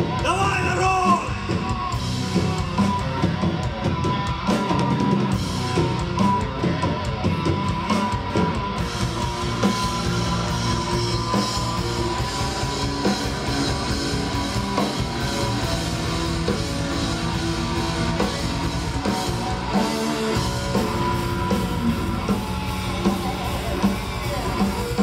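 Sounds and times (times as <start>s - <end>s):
drum kit: 0.0s - 25.0s
electric guitars: 0.0s - 25.0s.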